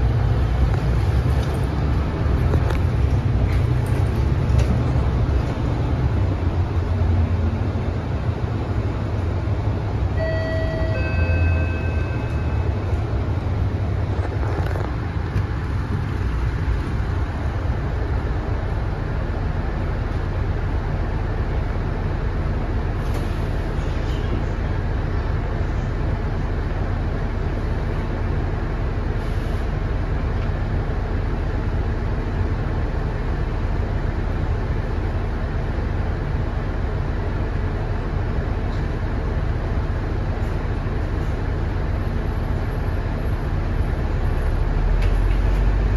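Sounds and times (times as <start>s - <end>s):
bus diesel engine: 0.0s - 45.9s
road noise: 0.0s - 45.9s
electronic chime: 10.2s - 12.6s.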